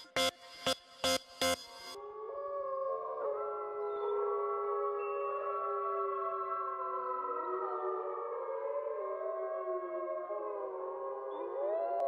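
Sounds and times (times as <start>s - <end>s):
sustained layered chords: 0.0s - 2.0s.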